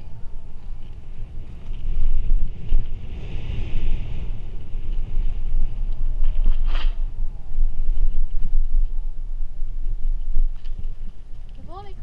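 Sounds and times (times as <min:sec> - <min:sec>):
bike tyres rumbling on tarmac: 0:00.0 - 0:12.0
wind buffeting microphone: 0:00.0 - 0:12.0.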